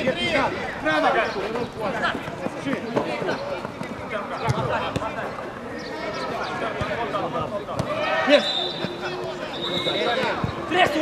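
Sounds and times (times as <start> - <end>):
players shouting: 5.8 - 11.0.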